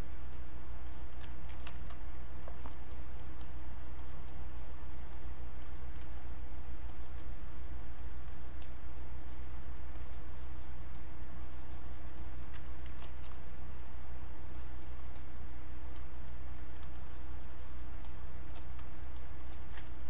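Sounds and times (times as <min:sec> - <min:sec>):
steady low hum: 0:00.0 - 0:20.0
stylus scratching on tablet: 0:00.8 - 0:19.9.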